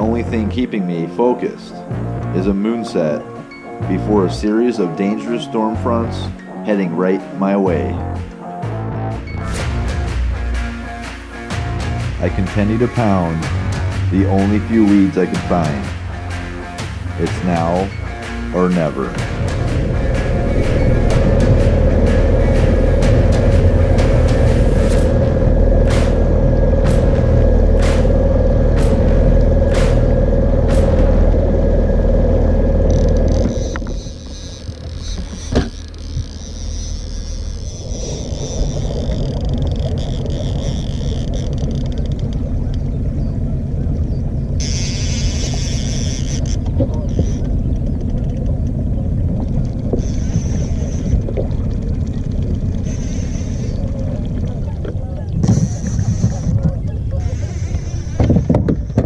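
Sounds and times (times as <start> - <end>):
wind and water on boat: 0.0 - 8.5, 9.2 - 59.0
background music with tick: 0.0 - 37.4
outboard motor running: 0.0 - 59.0
loud drone: 8.0 - 38.8, 48.8 - 58.5.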